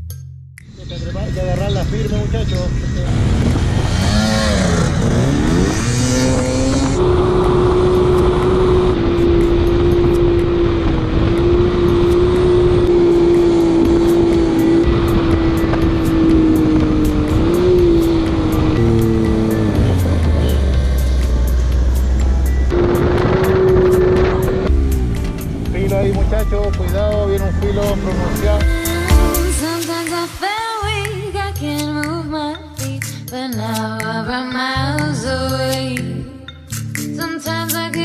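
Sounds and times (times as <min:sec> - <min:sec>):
vehicle engine running hard: 0:00.7 - 0:29.6
wind rushing over microphone: 0:01.6 - 0:26.2.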